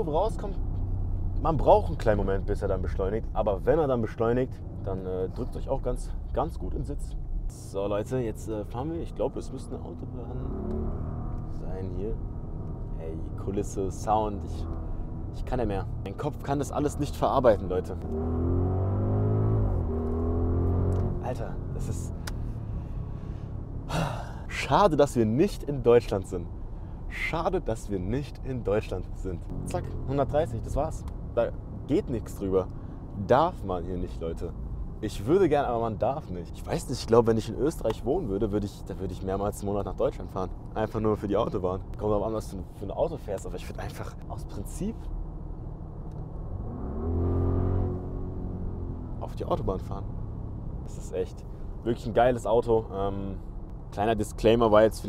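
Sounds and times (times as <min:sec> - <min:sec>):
car engine accelerating: 0:00.2 - 0:24.4, 0:27.8 - 0:36.0, 0:40.6 - 0:54.0.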